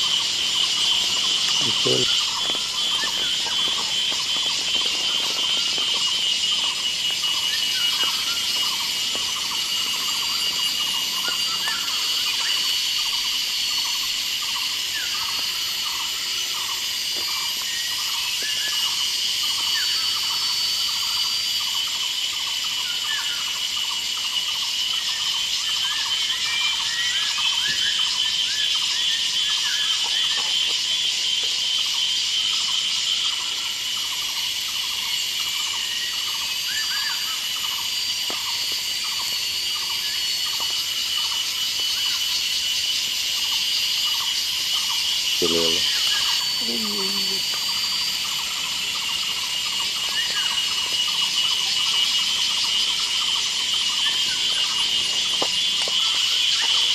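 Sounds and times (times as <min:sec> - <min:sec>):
short insect chirps: 0:00.0 - 0:56.9
shrill insect buzzing: 0:00.0 - 0:56.9.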